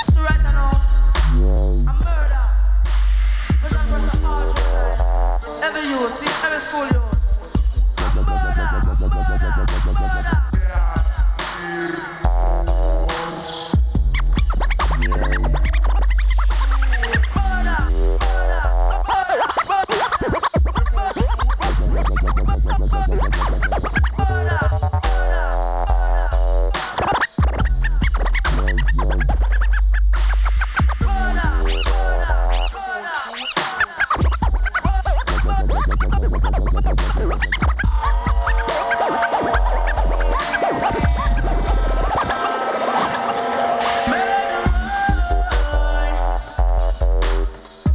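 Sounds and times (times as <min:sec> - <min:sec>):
hip hop beat with heavy bass: 0:00.0 - 0:47.9
turntable scratching: 0:00.0 - 0:47.9.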